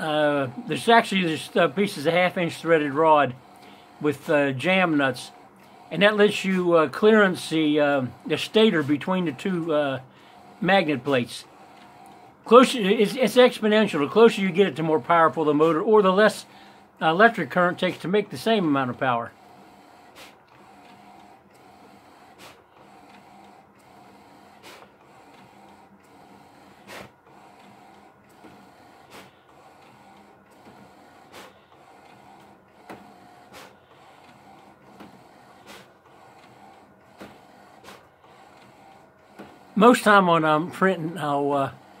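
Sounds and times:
printer whirring: 0.0s - 42.0s
printer clicking: 19.4s - 42.0s.

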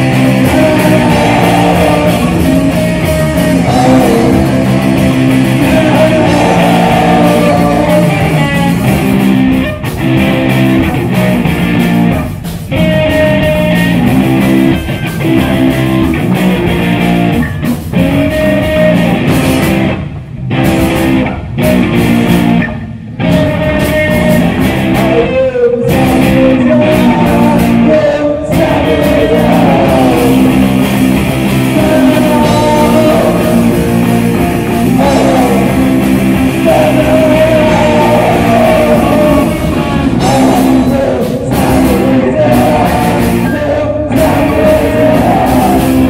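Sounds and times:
vocals: 0.0s - 20.1s, 20.8s - 46.0s
drums: 0.0s - 46.0s
electric guitars: 0.0s - 46.0s.

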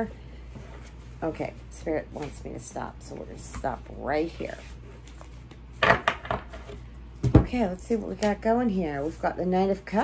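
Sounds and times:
cards knocked on wooden table: 5.8s - 7.5s.

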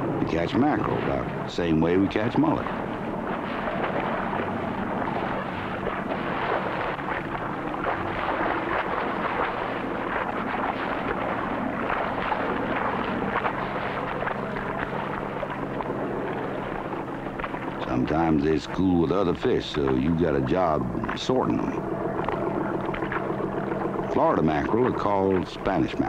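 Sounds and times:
fish splashing in water: 0.0s - 26.0s
low steady hum: 0.0s - 26.0s.

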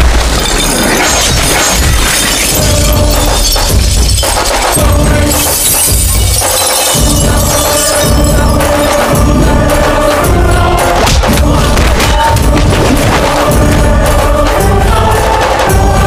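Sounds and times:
glass shattering effect: 0.0s - 10.3s.

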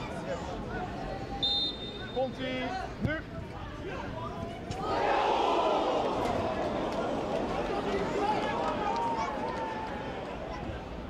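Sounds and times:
crowd murmur: 2.8s - 11.0s.

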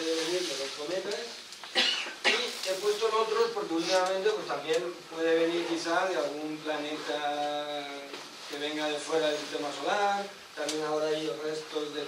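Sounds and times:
man speaking: 0.0s - 1.4s, 2.2s - 12.0s
person coughing: 1.7s - 2.5s.

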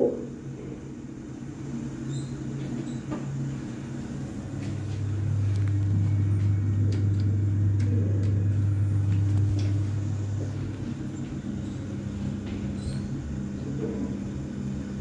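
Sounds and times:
lift machinery hum: 0.0s - 15.0s.

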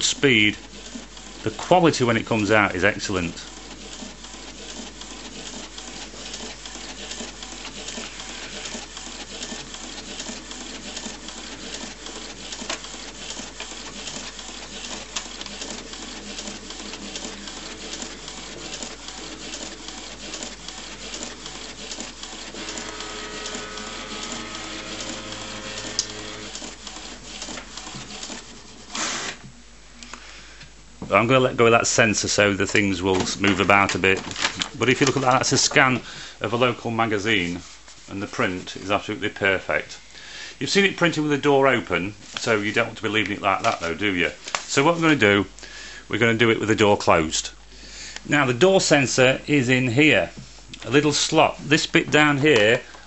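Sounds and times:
print carriage clicking and whirring: 0.0s - 29.5s, 32.0s - 36.3s, 41.9s - 45.2s
motor whine: 22.6s - 26.6s
short whirr: 22.6s - 26.7s.

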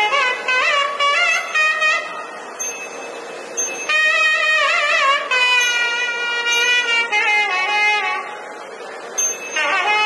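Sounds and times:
background hiss: 0.0s - 10.0s
wind instrument melody: 0.0s - 10.0s.

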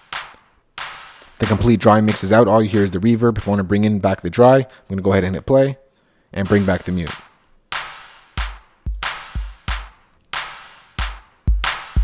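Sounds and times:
hand clap with reverb: 0.1s - 2.9s
kick drum with reverb: 8.4s - 10.0s, 11.0s - 12.0s.

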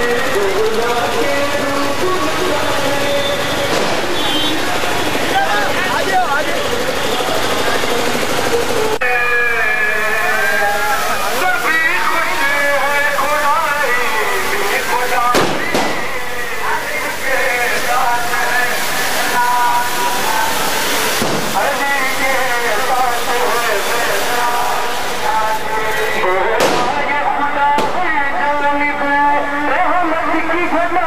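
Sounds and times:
firecrackers banging: 0.0s - 9.0s, 9.9s - 29.8s
crowd voices din: 0.0s - 31.0s.

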